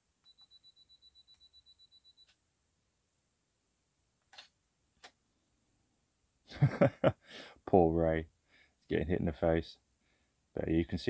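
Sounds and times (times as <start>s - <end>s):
camera self-timer beeping: 0.2s - 2.4s.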